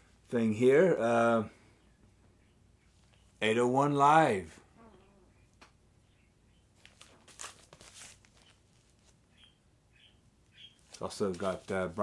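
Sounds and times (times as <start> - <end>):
record jacket rustling: 6.8 - 9.2, 10.8 - 12.0
faint high chirps: 9.3 - 10.9.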